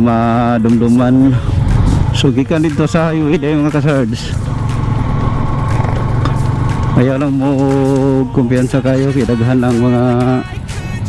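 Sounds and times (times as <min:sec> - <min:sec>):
motorcycle engine running: 0:00.0 - 0:10.8
road noise: 0:00.0 - 0:11.0.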